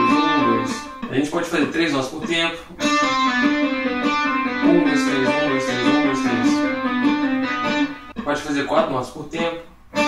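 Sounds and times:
electric guitar hammer-ons: 0:00.0 - 0:01.1, 0:02.2 - 0:08.8.

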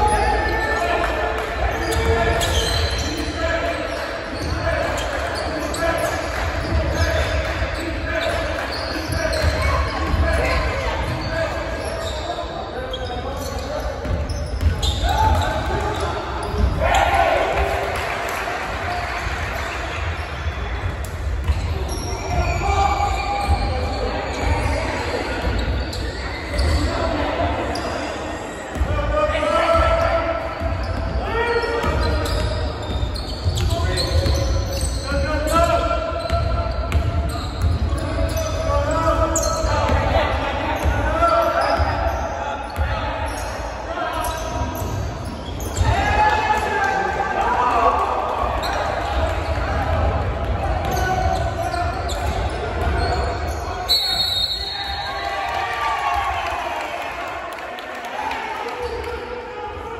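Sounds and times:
people calling and talking: 0:00.0 - 0:55.6.

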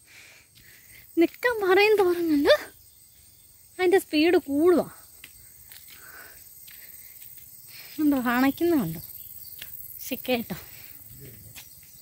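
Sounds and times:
high-pitched insect drone: 0:00.4 - 0:12.0.

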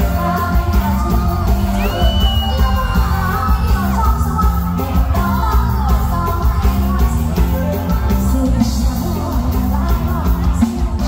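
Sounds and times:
live band music: 0:00.0 - 0:11.0
person singing: 0:00.0 - 0:11.0.

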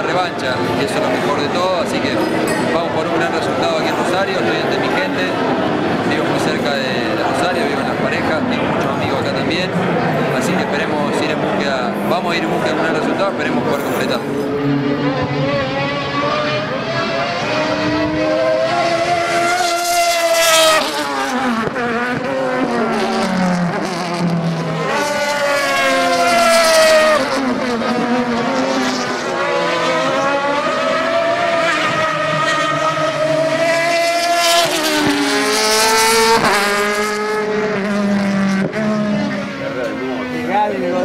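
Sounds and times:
racing car engines revving: 0:00.0 - 0:41.0.

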